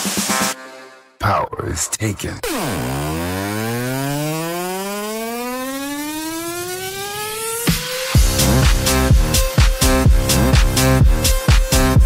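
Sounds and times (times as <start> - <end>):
rising buzzy synthesizer tone: 2.4 - 9.1.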